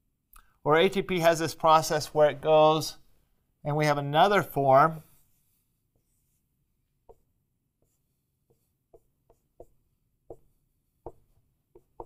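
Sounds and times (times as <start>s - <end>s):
marker on whiteboard: 4.3s - 12.0s.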